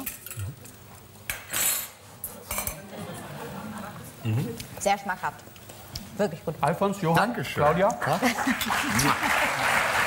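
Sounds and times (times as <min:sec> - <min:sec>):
cutlery clinking on plates: 0:01.3 - 0:02.8.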